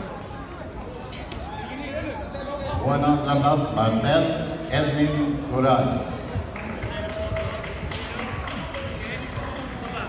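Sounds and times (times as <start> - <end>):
murmur of overlapping voices: 0.0 - 10.0.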